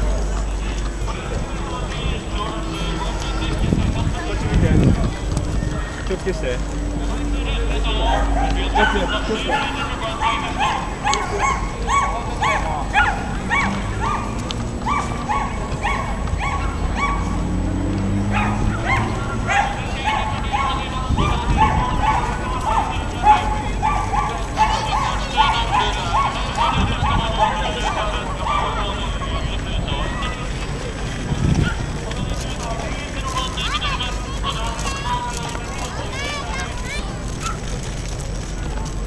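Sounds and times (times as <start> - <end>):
chatter of passers-by: 0.0 - 39.0.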